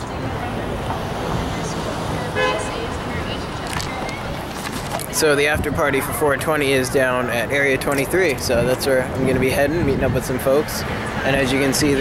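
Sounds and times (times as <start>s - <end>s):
wind buffeting microphone: 0.0s - 7.0s, 7.8s - 12.0s
traffic rushing: 0.0s - 12.0s.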